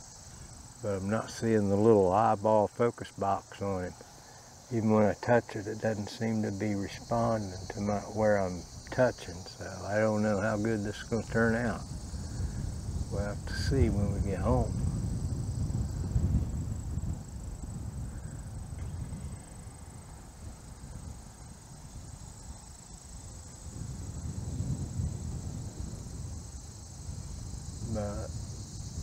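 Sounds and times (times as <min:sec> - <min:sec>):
insects trilling: 0:00.0 - 0:29.0.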